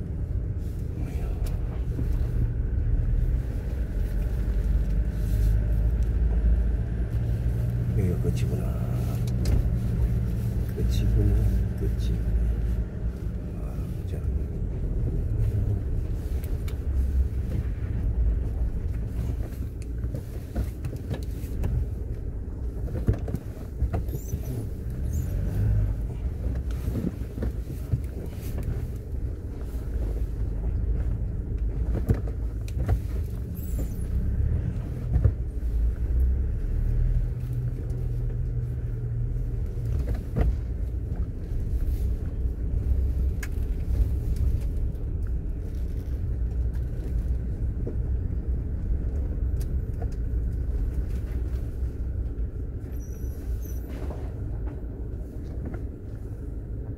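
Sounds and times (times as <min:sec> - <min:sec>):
car engine and tyres rumbling: 0:00.0 - 0:56.9.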